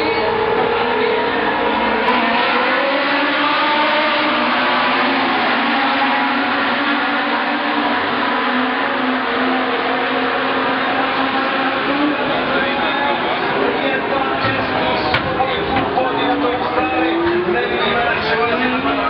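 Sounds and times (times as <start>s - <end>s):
racing car engines roaring past: 0.0s - 19.0s.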